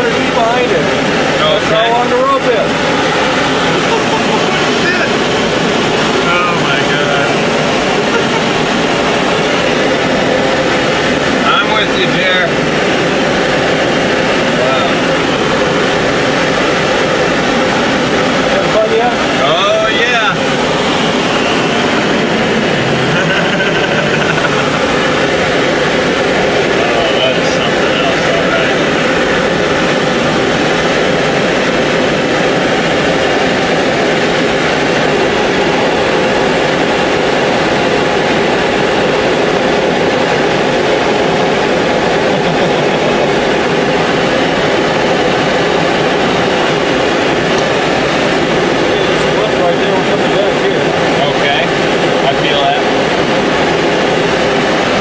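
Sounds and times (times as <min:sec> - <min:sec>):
tow plane engine drone: 0:00.0 - 0:55.0.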